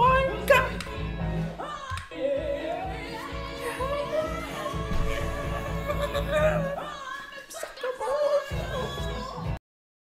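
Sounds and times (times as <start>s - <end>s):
woman singing: 0.0s - 9.6s.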